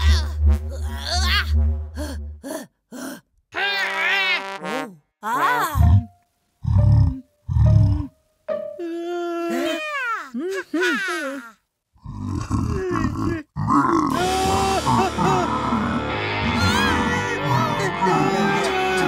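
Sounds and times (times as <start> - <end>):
cartoon voices grunting and whining: 0.0 - 1.5, 3.5 - 6.1, 8.9 - 19.0
background music: 0.0 - 2.6, 14.1 - 19.0.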